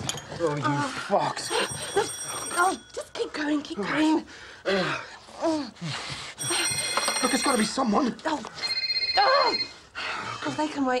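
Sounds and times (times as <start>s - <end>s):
electronic phone ringtone: 1.4s - 3.0s, 6.4s - 8.0s, 8.6s - 9.8s.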